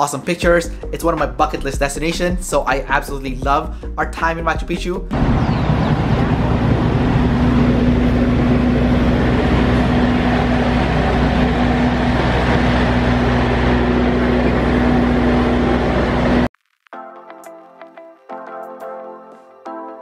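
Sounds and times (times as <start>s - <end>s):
broad rushing noise: 5.1s - 16.5s
diesel train engine humming: 5.1s - 16.5s.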